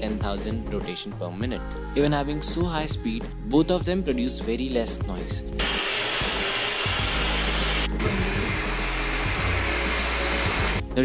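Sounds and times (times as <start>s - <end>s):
hair dryer blowing: 5.6s - 10.9s.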